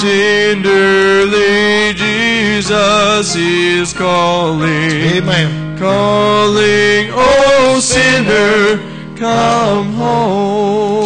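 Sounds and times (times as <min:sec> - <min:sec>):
slow gospel hymn singing: 0:00.0 - 0:11.0.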